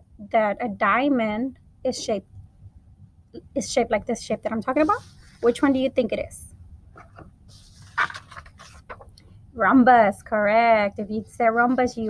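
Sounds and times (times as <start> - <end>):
cardboard card rustle: 7.0 - 9.2.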